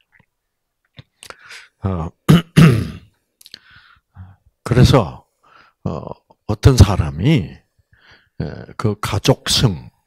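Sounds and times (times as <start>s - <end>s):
man clearing his throat: 2.3s - 3.2s.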